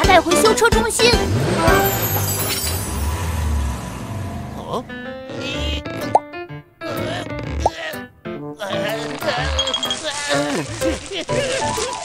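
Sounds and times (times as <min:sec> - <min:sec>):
light cartoon music: 0:00.0 - 0:02.9, 0:04.9 - 0:12.0.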